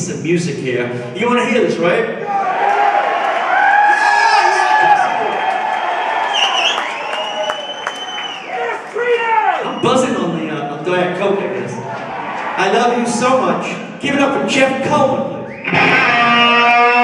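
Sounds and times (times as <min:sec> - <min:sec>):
people shouting and whooping: 0:02.2 - 0:10.2, 0:11.8 - 0:13.0
audience cheering: 0:02.2 - 0:10.5, 0:11.5 - 0:13.5.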